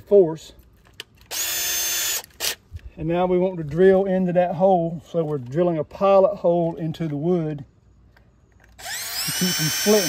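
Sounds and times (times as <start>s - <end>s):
cordless drill motor spinning: 1.3s - 2.6s, 8.7s - 10.0s.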